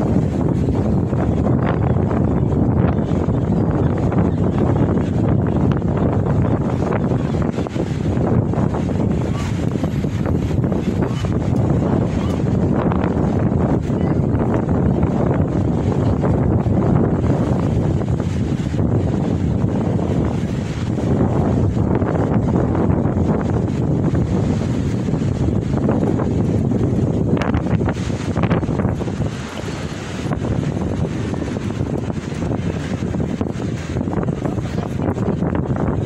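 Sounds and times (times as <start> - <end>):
wind buffeting microphone: 0.0 - 36.0.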